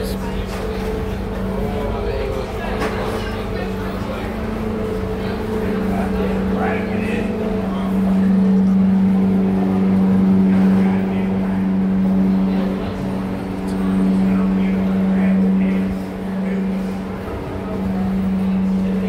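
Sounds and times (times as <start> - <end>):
faint voices: 0.0 - 19.0
machinery humming: 0.0 - 19.0.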